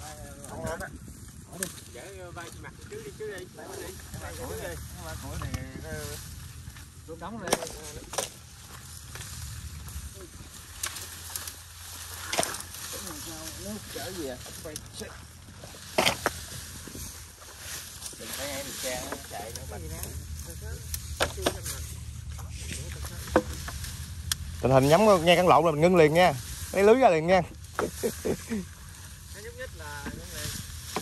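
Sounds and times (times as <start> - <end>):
dry branches rustling and cracking: 0.0 - 31.0.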